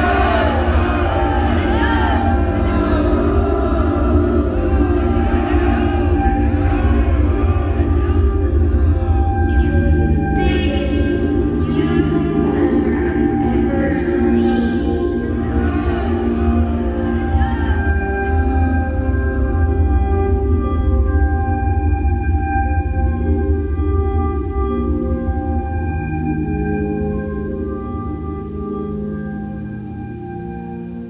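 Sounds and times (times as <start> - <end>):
electronic music drone: 0.0 - 31.0.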